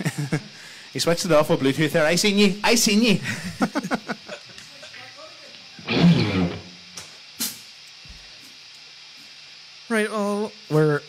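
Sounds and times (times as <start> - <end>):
pa system hiss: 0.0 - 11.0.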